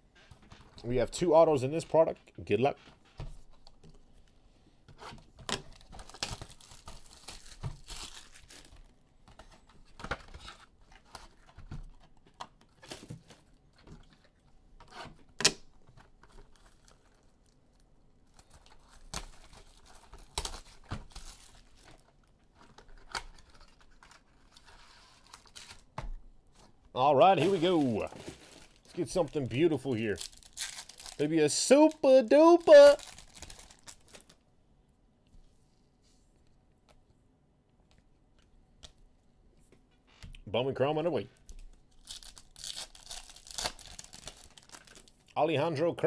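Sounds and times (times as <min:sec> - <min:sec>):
plastic wrap and cardboard crinkling: 0:05.5 - 0:14.4, 0:15.8 - 0:34.4, 0:41.8 - 0:45.3.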